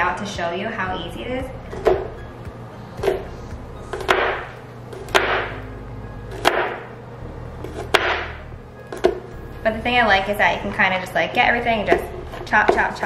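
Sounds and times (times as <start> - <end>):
knife chopping on cutting mat: 3.9 - 5.6, 6.4 - 6.8, 7.8 - 8.3.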